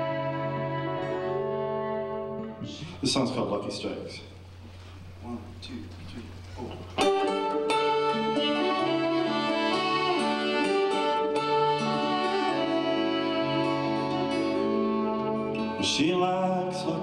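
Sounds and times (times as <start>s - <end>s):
steel-string acoustic guitar: 0.0s - 3.0s, 6.8s - 17.0s
fiddle sliding notes: 0.0s - 3.4s, 7.0s - 17.0s.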